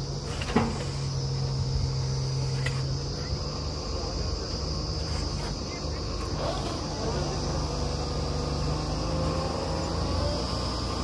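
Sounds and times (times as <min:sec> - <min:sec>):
drilling rig engine running: 0:00.0 - 0:11.0.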